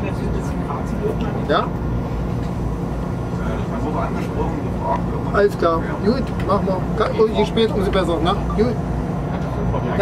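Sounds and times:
high-speed train running noise: 0.0s - 10.0s.

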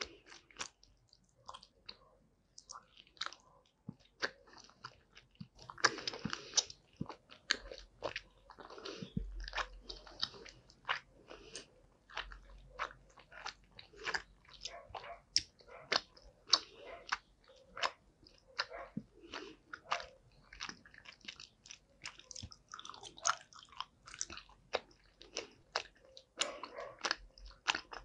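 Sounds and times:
mouth chewing gummy candy: 0.0s - 28.0s.

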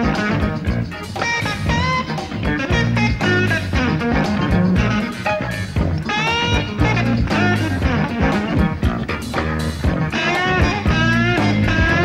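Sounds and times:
bass line: 0.0s - 12.0s
drum beat: 0.0s - 12.0s
lead electric guitar bending notes: 0.0s - 12.0s.

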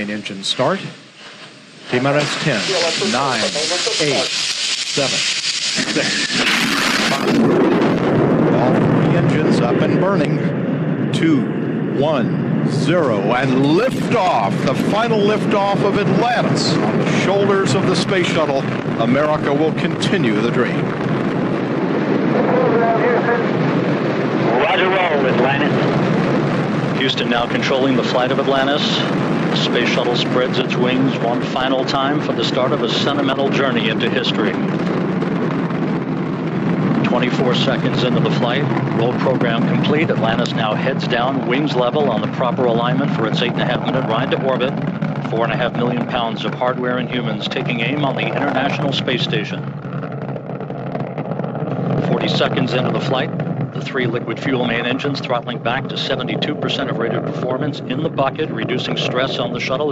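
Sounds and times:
rocket exhaust roar: 0.0s - 59.9s
faint voice: 24.5s - 25.7s.

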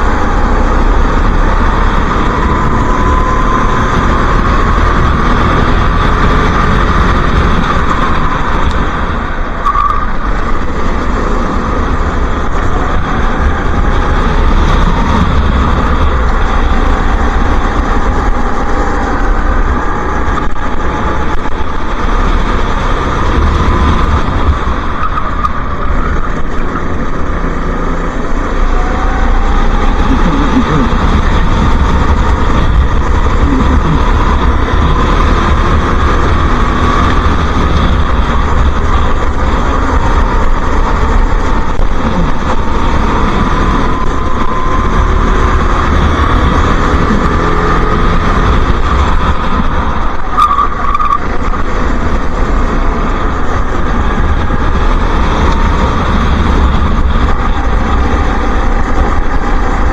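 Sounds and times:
go-kart engine revving: 0.0s - 59.9s.

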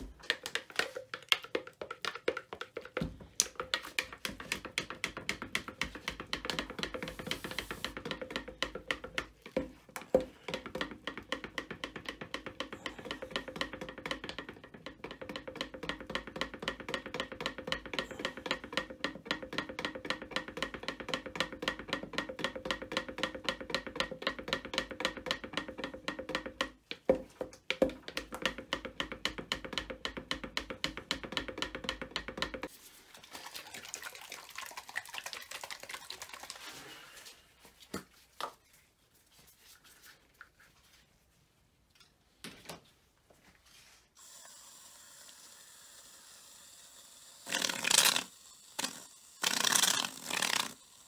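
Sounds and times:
stick stirring in plastic cup: 0.0s - 38.8s, 47.5s - 50.8s.

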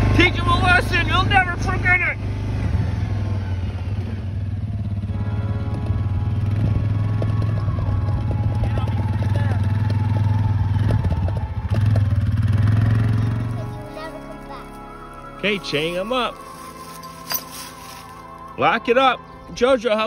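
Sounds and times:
quad bike engine running: 0.0s - 14.4s.

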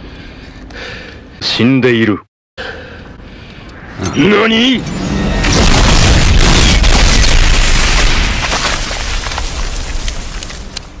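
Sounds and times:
rumble with crackling debris: 4.8s - 11.0s
large explosion boom: 4.9s - 9.9s.

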